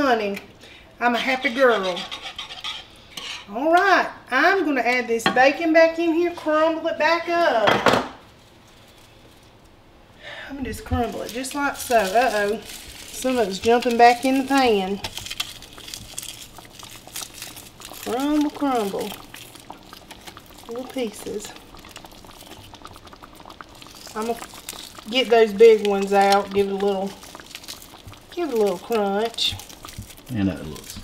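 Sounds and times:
gravy bubbling and popping: 10.6s - 31.0s.

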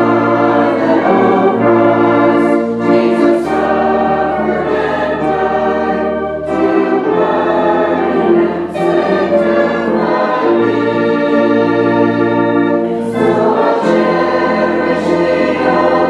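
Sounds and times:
congregation singing a hymn: 0.0s - 16.0s
organ chords: 0.0s - 16.0s.

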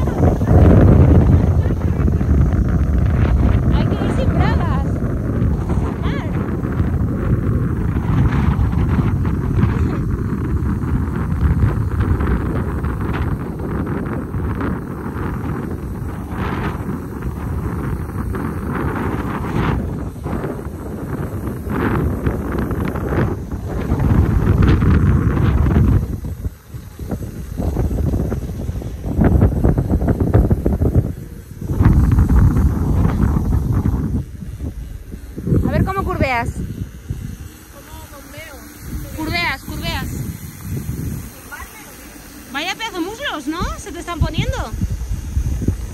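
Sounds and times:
wind buffeting microphone: 0.0s - 45.9s.

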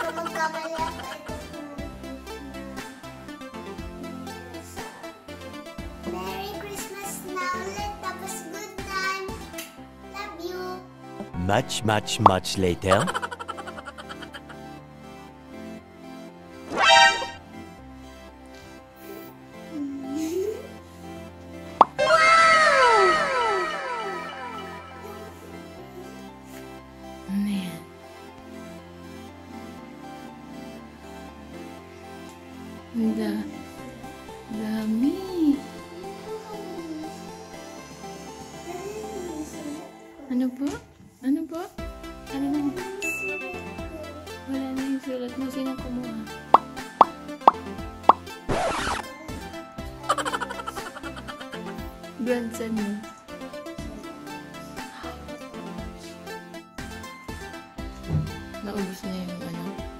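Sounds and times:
background music: 0.0s - 59.9s
cartoon pop sound effects: 16.7s - 17.4s, 21.8s - 22.3s, 48.5s - 49.0s
quick upward sweep: 16.7s - 17.4s, 48.5s - 49.0s.

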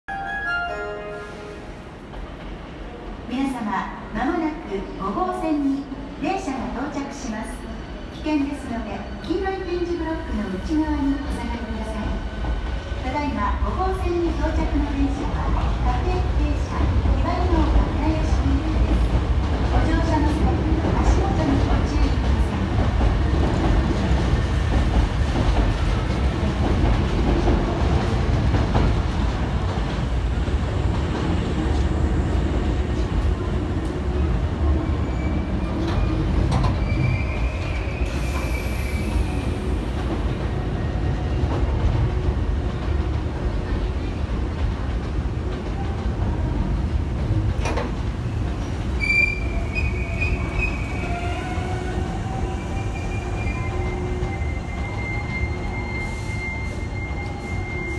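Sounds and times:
train wheels rumbling on rail: 10.2s - 57.9s
train brake squeals: 35.0s - 39.8s, 49.0s - 52.0s, 52.8s - 57.9s.

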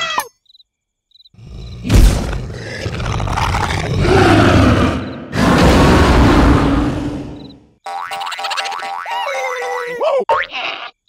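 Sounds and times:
cartoon roar: 2.0s - 7.4s.

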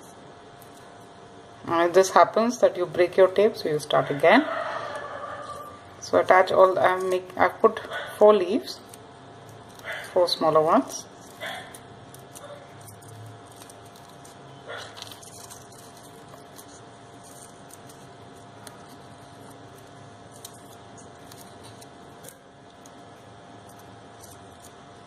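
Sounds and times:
steady low hum: 0.0s - 25.0s
paper rustling and crinkling: 11.1s - 24.8s.

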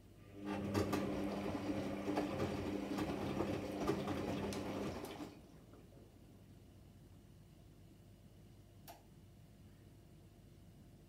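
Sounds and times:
washing machine motor humming: 0.2s - 5.5s.

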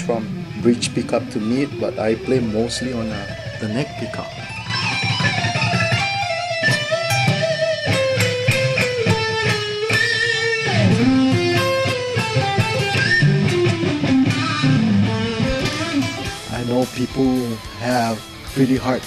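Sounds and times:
electric guitar rock lead: 0.0s - 19.0s.

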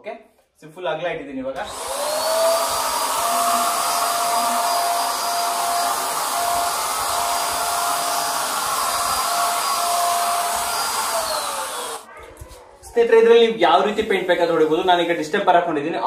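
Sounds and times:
motor winding down: 1.6s - 12.1s
paint sprayer whining: 1.6s - 12.1s
rushing air: 1.6s - 12.1s.

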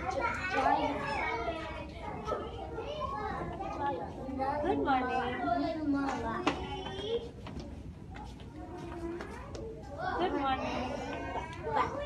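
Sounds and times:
young children talking and calling: 0.0s - 12.0s.

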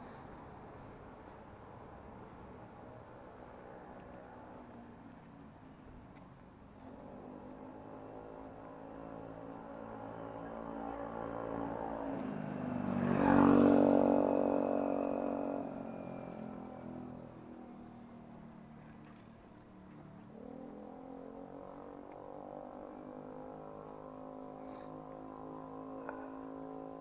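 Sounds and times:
vehicle engine hum: 0.0s - 27.0s.

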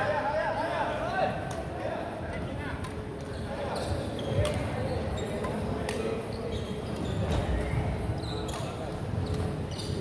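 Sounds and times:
sneakers squeaking on wooden court: 3.2s - 10.0s.

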